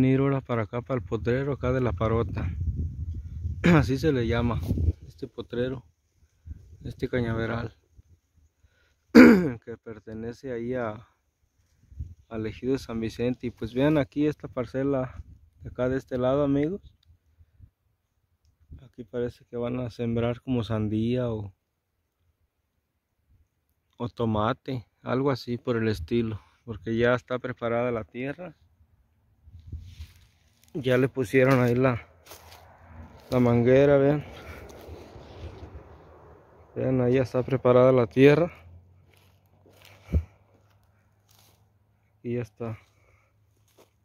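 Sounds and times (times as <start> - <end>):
faint outdoor background: 0.0 - 44.0
faint soft clicks: 18.4 - 18.7
short low thump: 40.0 - 40.4.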